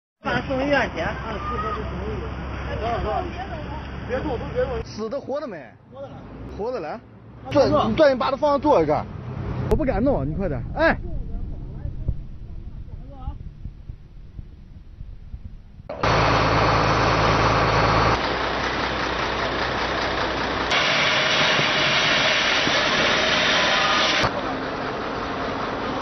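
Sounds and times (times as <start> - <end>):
deep engine-like hum: 9.4 - 26.0
water hose rushing: 20.6 - 24.5.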